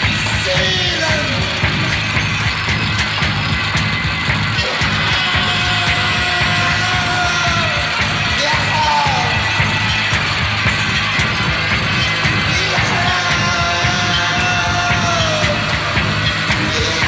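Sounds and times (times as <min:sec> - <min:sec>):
harsh distorted music: 0:00.0 - 0:17.0.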